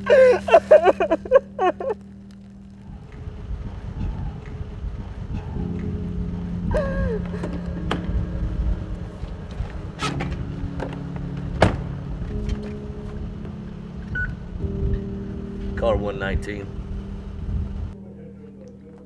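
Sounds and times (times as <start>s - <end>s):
low rumble: 0.0s - 18.1s
low hum: 0.0s - 19.0s
car door thunk: 10.0s - 12.0s.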